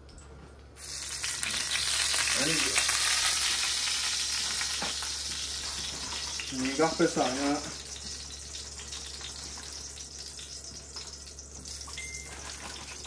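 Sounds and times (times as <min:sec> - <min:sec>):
hot oil sizzling in a skillet: 0:00.8 - 0:13.0.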